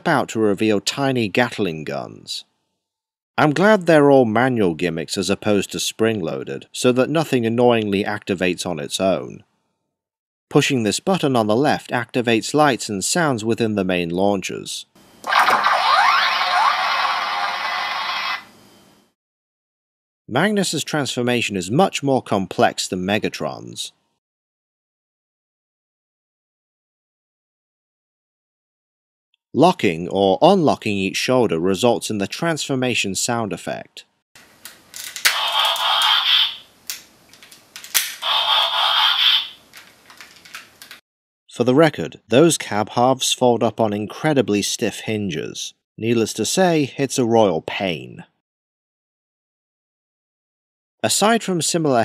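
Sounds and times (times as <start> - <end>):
harsh electronic toy noise: 15.2 - 18.6, 35.2 - 36.7, 38.2 - 39.7
sharp plastic click: 36.9 - 38.2
small plastic handling clicks: 39.7 - 41.0.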